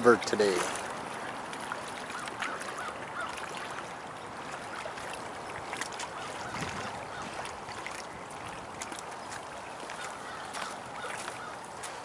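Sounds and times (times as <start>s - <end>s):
choppy river water: 0.0s - 12.0s
wind: 0.0s - 12.0s.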